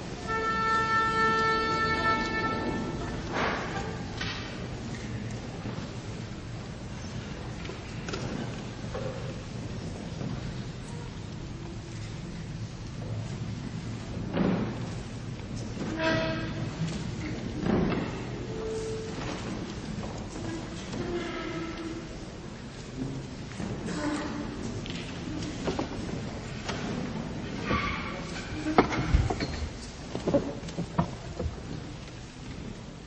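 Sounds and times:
orchestral instrument held note: 0:00.2 - 0:03.3.

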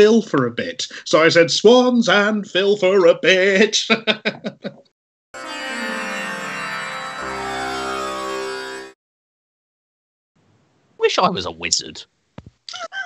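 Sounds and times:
music chord with falling sweep: 0:05.4 - 0:09.0.

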